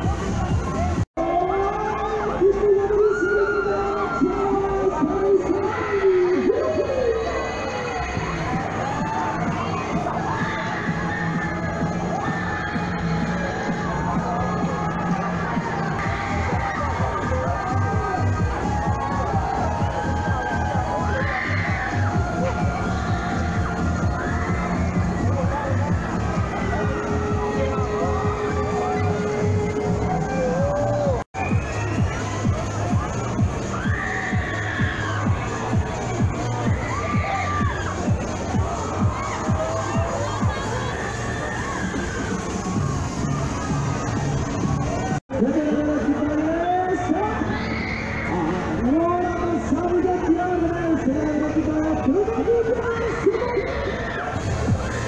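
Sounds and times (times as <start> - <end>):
fair crowd din: 0.0 - 55.0
loud techno music: 0.0 - 55.0.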